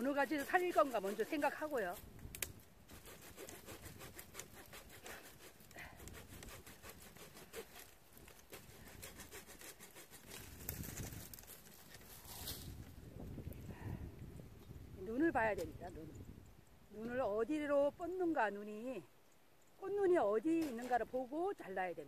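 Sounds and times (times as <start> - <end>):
twigs crackling and clicking: 0.0 - 12.6.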